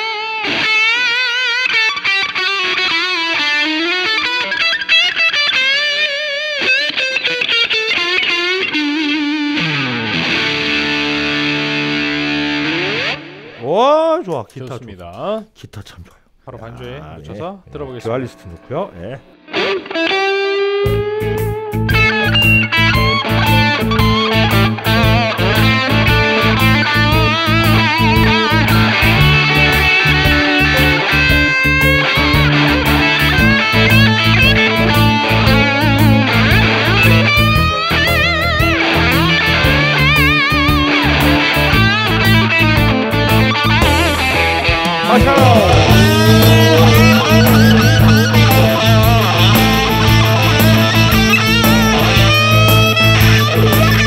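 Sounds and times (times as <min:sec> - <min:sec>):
electric guitar solo: 0:00.0 - 0:13.8, 0:18.3 - 0:54.0
bass: 0:20.9 - 0:54.0
drums: 0:20.9 - 0:54.0.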